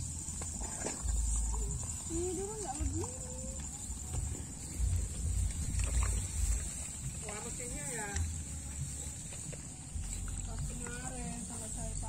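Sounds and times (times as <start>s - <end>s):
steady high hiss: 0.0s - 12.0s
wind rumbling on microphone: 0.0s - 12.0s.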